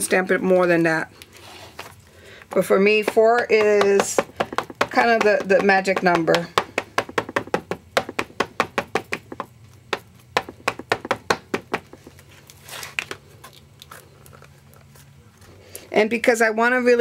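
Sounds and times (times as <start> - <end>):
ink pad tapping stamp: 3.0 - 12.0.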